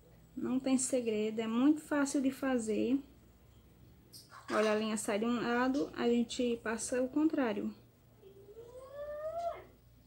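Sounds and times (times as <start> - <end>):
child calling with rising pitch: 8.2 - 9.7.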